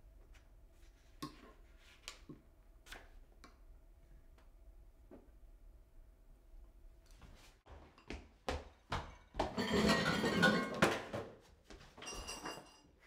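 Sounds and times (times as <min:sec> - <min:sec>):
tableware rattling: 0:09.5 - 0:11.1, 0:12.0 - 0:13.0.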